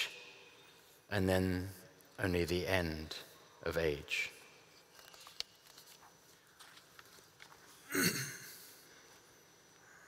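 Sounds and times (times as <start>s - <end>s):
man clearing throat: 7.9s - 8.7s.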